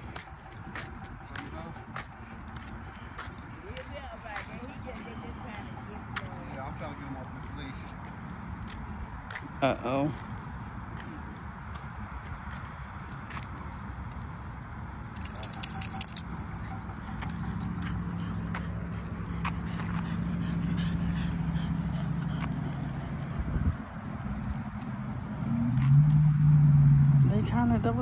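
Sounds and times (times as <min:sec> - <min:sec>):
small metal objects jingling: 0:13.8 - 0:26.9.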